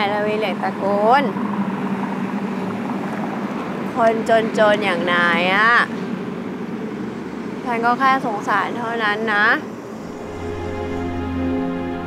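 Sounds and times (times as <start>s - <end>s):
woman speaking: 4.0s - 5.9s, 7.7s - 9.7s.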